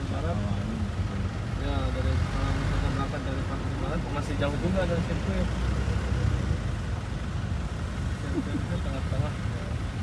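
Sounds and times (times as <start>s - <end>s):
road and engine rumble: 0.0s - 10.0s
voices talking: 0.0s - 10.0s.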